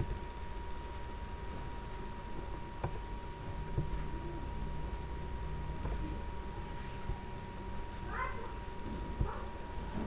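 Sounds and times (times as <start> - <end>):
faint steady whine: 0.0 - 10.0
room noise: 0.0 - 10.0.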